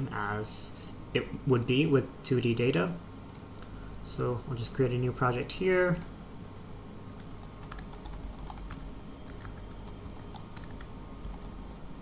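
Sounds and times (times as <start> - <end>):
typing on computer keyboard: 7.2 - 11.8.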